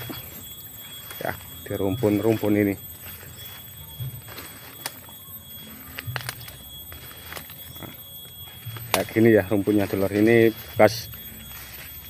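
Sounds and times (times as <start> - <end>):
footsteps through undergrowth: 0.0 - 12.0
sharp crackles: 0.0 - 12.0.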